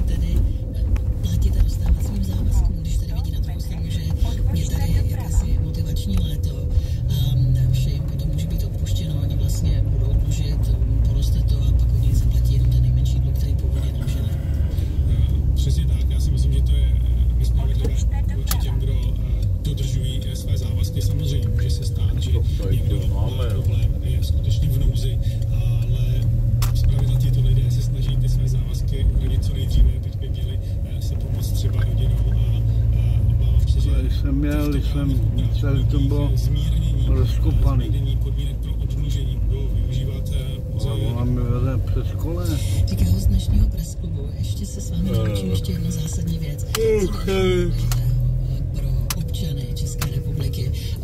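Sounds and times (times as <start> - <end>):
engine and tyre rumble: 0.0 - 51.0.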